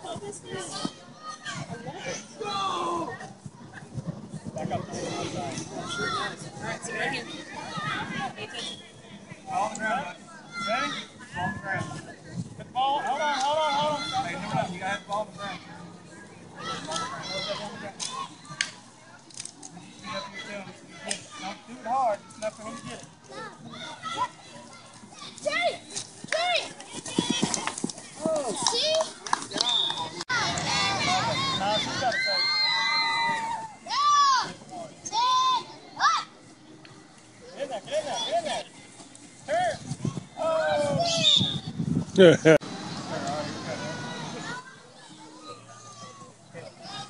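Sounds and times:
faint voices of children and adults: 0:00.0 - 0:47.0.

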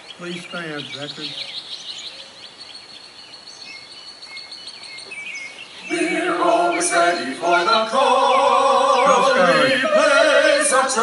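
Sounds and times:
birds chirping and singing: 0:00.0 - 0:11.0
outdoor background noise: 0:00.0 - 0:11.0.

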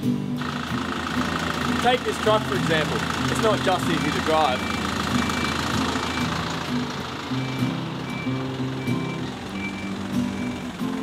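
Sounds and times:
low held music notes: 0:00.0 - 0:11.0
truck engine idling: 0:00.0 - 0:11.0.

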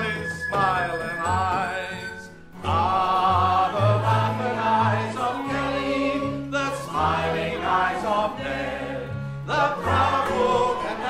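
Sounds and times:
male lead voice singing: 0:00.0 - 0:04.4
mixed choir singing: 0:02.6 - 0:11.0.

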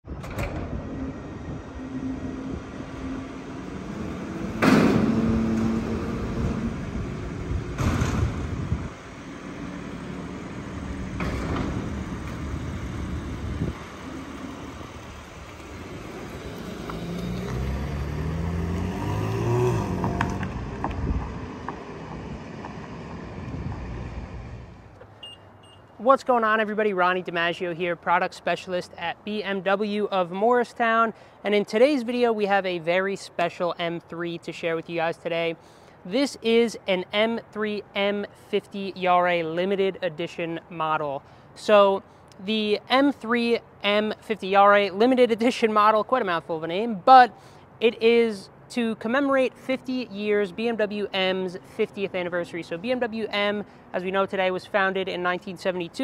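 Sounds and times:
heavy metal doors clunking: 0:00.0 - 0:14.6
car engine pulling away: 0:00.9 - 0:25.0.

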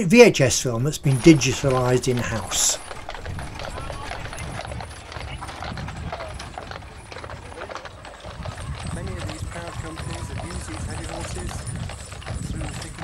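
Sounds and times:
onlookers talking: 0:00.0 - 0:11.6
hooves clip-clopping on pavement: 0:00.4 - 0:13.0.

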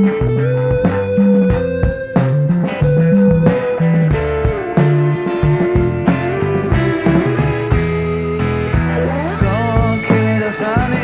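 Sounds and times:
bass line: 0:00.0 - 0:11.0
drum hits: 0:00.0 - 0:11.0
held electric guitar note: 0:00.0 - 0:11.0.

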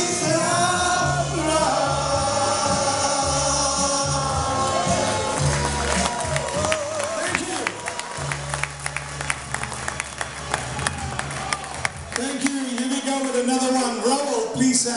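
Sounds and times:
backing music: 0:00.0 - 0:14.9
audience clapping: 0:04.6 - 0:14.1.

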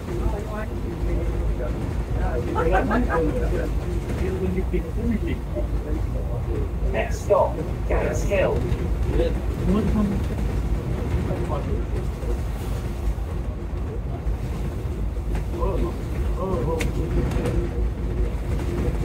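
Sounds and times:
bus engine rumble: 0:00.0 - 0:19.0
faint voices murmuring: 0:00.0 - 0:19.0.

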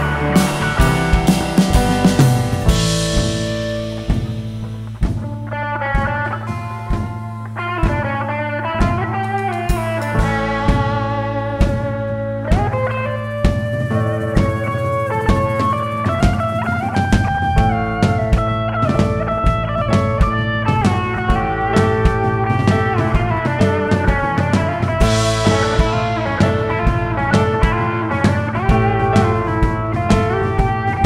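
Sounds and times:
bass: 0:00.0 - 0:31.0
drums: 0:00.0 - 0:31.0
electric guitar lead line: 0:00.0 - 0:31.0
keyboard: 0:00.0 - 0:31.0.

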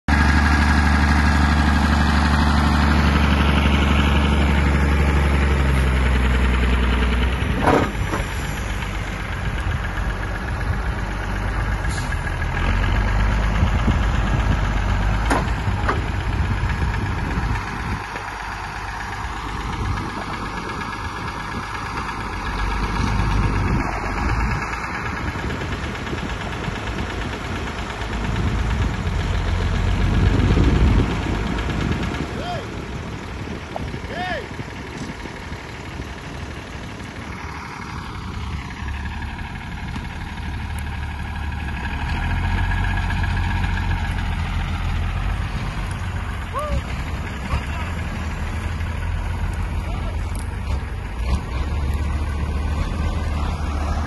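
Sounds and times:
tractor diesel engine under load: 0:00.0 - 0:54.0
sharp engine knocks: 0:07.0 - 0:10.4, 0:13.8 - 0:29.5.

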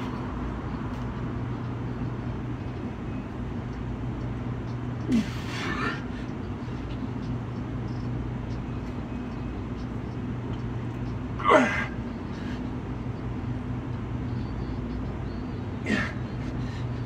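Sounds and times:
low mechanical hum: 0:00.0 - 0:17.0
man grunting with breath: 0:15.8 - 0:16.2.

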